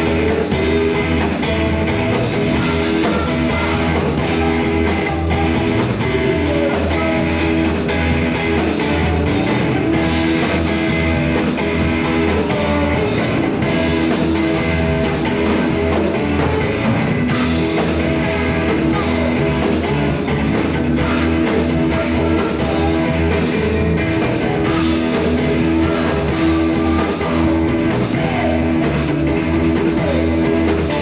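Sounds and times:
bass guitar: 0.0s - 31.0s
drum kit: 0.0s - 31.0s
electric guitars: 0.0s - 31.0s.

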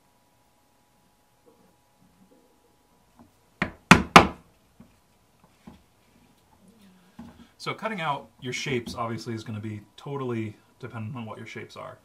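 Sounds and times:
mallet striking hand punch: 3.6s - 4.4s.

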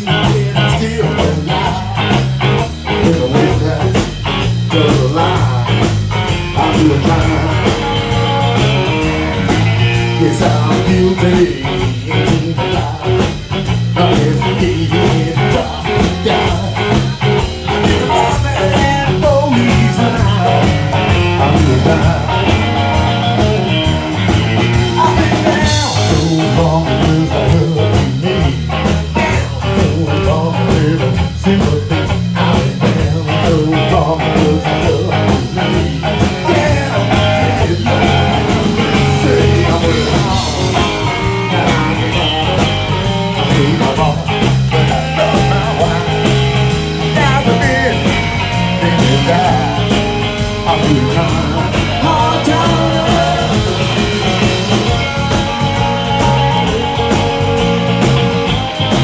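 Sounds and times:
bass guitar: 0.0s - 59.0s
drum kit: 0.0s - 59.0s
electric guitar playing blues: 0.0s - 59.0s.

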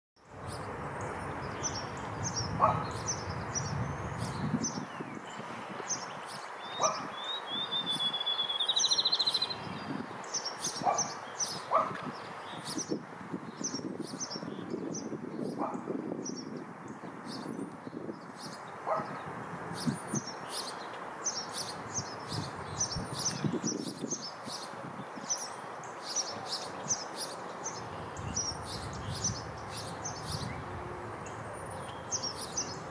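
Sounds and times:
small birds chirping: 0.3s - 32.9s
bird whistled notes and trill: 1.5s - 11.9s.

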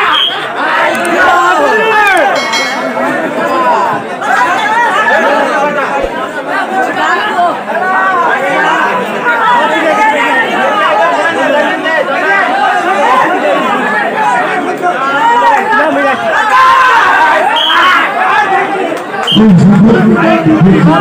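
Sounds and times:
crowd talking and calling out: 0.0s - 21.0s.

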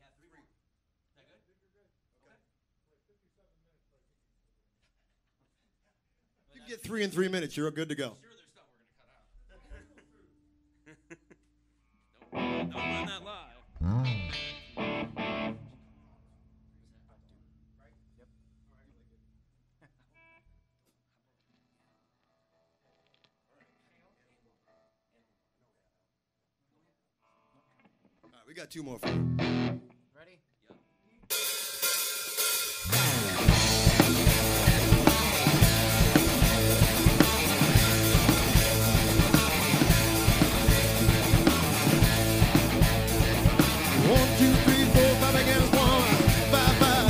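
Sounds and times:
live rock band playing: 12.4s - 13.1s, 14.1s - 15.7s, 29.0s - 29.8s, 31.3s - 47.0s
drum kit steady beat: 31.3s - 47.0s.

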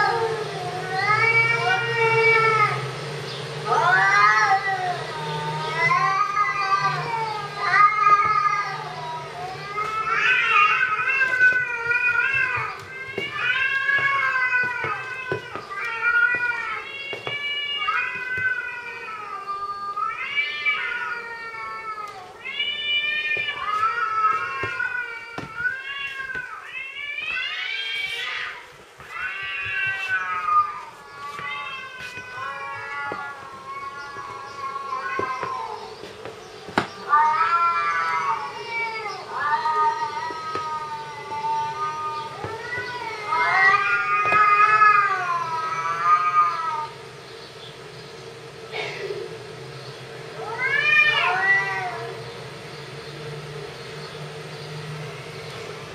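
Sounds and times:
loud rising cat call: 0.0s - 2.9s, 37.0s - 47.0s, 50.3s - 52.2s.

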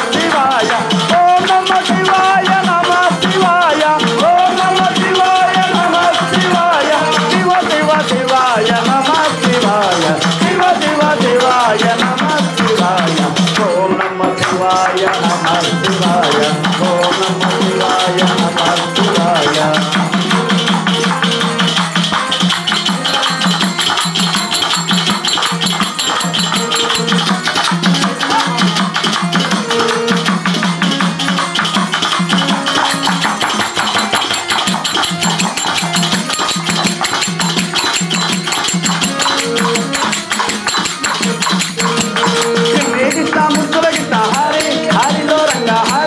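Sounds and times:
harmonium playing: 0.0s - 46.0s
jingling percussion: 0.0s - 46.0s
hand cymbals clinking: 15.0s - 46.0s.

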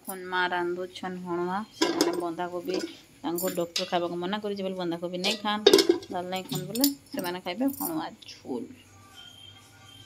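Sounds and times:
person talking: 0.0s - 8.7s.

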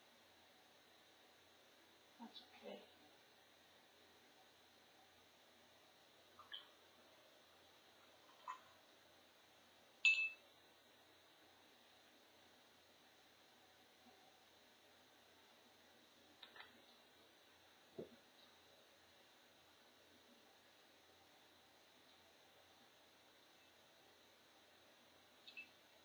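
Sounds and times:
soft taps of handling items: 18.0s - 18.5s.

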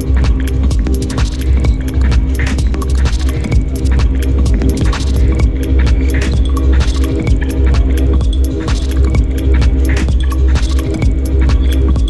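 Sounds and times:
deep throbbing bass drone: 0.0s - 12.0s
sharp clicks and ticks: 0.0s - 12.0s
steady held electronic tones: 0.0s - 12.0s.

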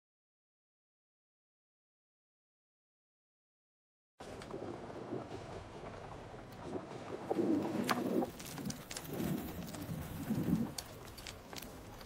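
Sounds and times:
faint clicks: 7.6s - 12.0s.

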